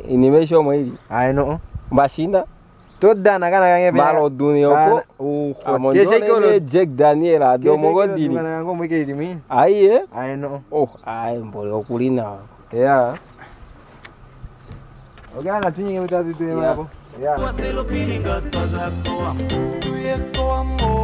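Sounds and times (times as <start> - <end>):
man chanting: 17.3 - 21.0
high-pitched buzz: 17.4 - 21.0
music with heavy bass beat: 17.4 - 21.0.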